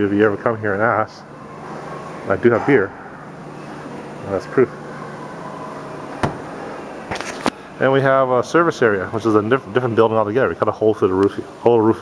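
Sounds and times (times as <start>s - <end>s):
steady background hum: 0.0s - 12.0s
sharp knock: 6.2s - 6.5s.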